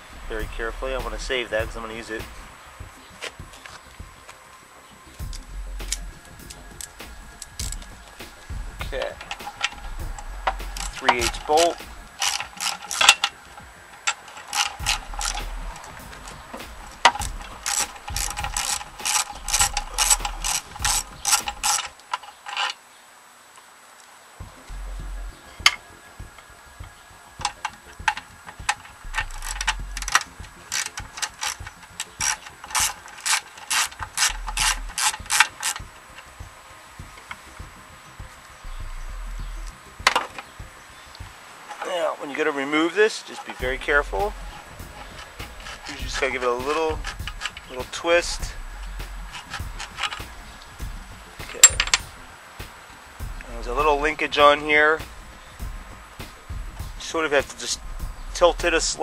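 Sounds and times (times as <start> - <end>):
socket ratchet clicking: 5.3 - 22.0, 27.4 - 35.8.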